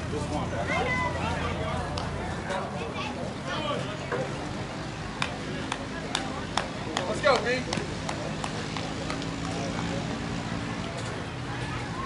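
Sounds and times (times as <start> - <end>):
voices of players: 0.0 - 10.2.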